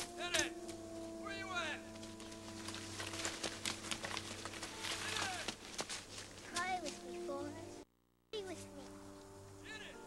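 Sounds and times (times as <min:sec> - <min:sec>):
soft film score music: 0:00.0 - 0:10.0.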